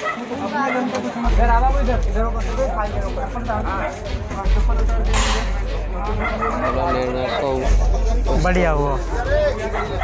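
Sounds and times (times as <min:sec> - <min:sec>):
men calling out in a crowd: 0:00.0 - 0:10.0.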